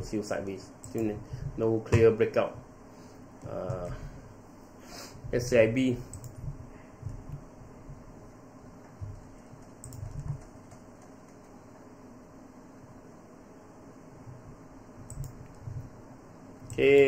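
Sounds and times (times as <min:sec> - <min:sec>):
low computer fan hum: 0:00.0 - 0:17.0
keyboard and mouse clicks: 0:00.8 - 0:01.2, 0:06.1 - 0:07.4, 0:08.8 - 0:11.6, 0:15.0 - 0:15.9.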